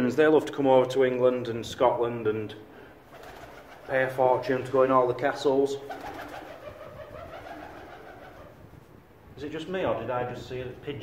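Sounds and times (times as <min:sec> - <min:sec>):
pigeon cooing: 0:05.8 - 0:08.7.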